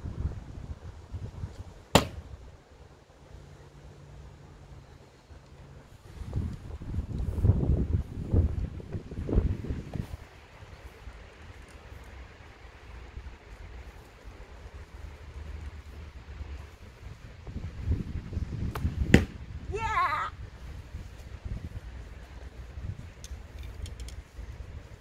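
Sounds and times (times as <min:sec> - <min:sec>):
wind buffeting microphone: 0:00.0 - 0:02.6, 0:05.8 - 0:25.0.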